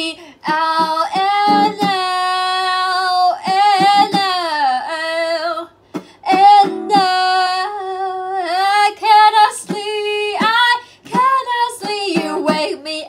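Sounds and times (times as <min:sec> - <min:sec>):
woman singing long notes: 0:00.5 - 0:05.6.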